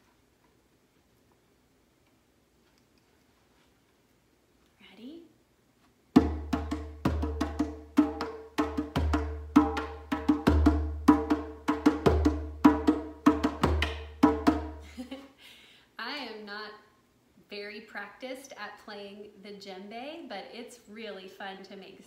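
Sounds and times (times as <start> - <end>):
djembe played by hand: 6.2 - 14.8.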